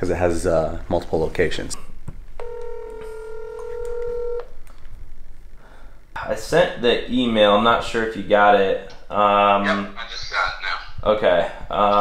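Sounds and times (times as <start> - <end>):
phone ringback tone: 2.4 - 4.5.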